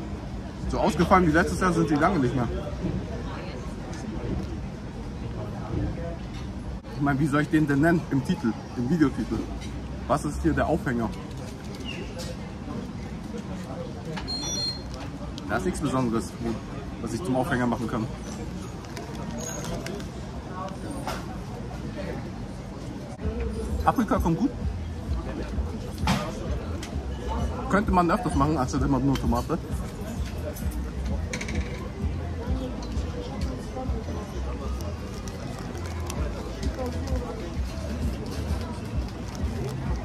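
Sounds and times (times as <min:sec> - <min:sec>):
busy shop and street background: 0:00.0 - 0:40.0
faint voices: 0:00.0 - 0:40.0.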